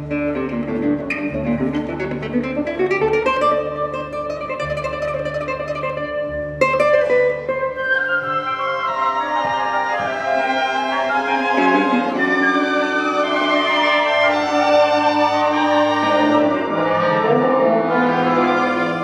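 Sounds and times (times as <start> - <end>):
cellos and double bass low notes: 0.0 - 19.0
classical guitar: 0.0 - 19.0
string orchestra: 0.0 - 19.0.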